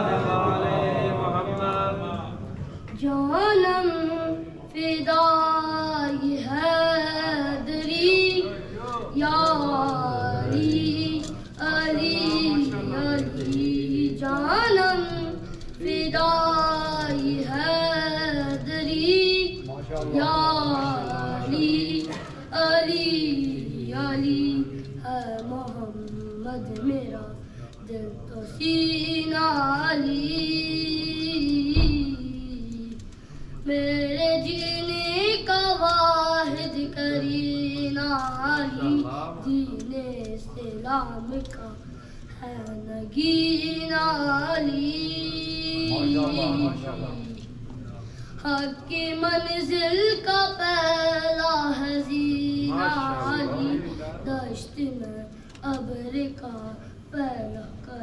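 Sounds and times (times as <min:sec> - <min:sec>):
boy singing into a microphone: 0:02.9 - 0:47.5, 0:48.4 - 0:58.0.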